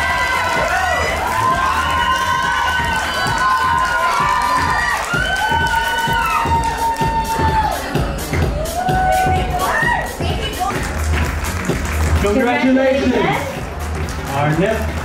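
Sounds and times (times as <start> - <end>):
audience cheering and whooping: 0.0 - 12.2.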